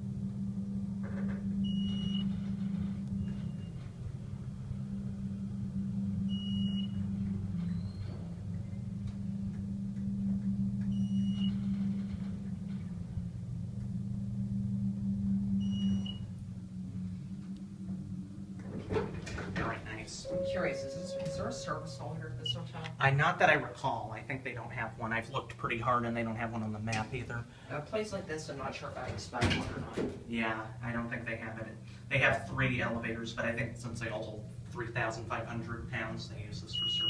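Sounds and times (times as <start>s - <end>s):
elevator pump motor hum: 0.0s - 37.0s
short high beeps: 20.2s - 22.8s.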